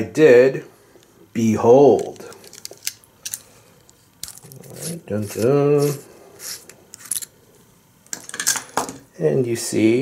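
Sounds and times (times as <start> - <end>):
small metal parts clicking: 2.0 - 4.9, 6.9 - 7.3.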